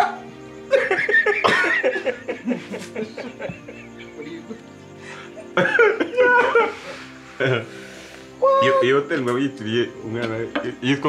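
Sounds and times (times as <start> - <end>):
loud laughter with coughing: 0.0 - 7.7
background music: 0.0 - 11.0.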